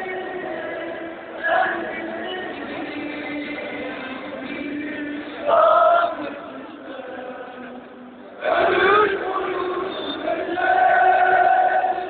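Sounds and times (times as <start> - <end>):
football crowd chanting: 8.4 - 12.0.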